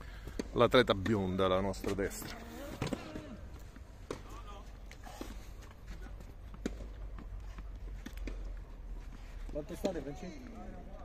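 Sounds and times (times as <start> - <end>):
tennis balls being hit: 0.2 - 8.7
footsteps: 0.2 - 11.0.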